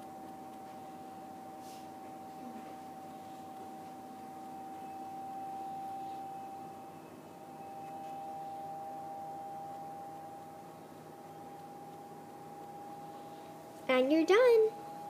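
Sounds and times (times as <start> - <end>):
faint steady tones: 0.0 - 15.0
high-pitched whine: 0.0 - 15.0.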